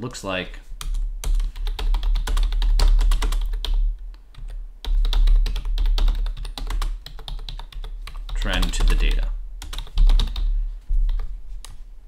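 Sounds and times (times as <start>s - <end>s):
typing on computer keyboard: 0.8s - 10.5s.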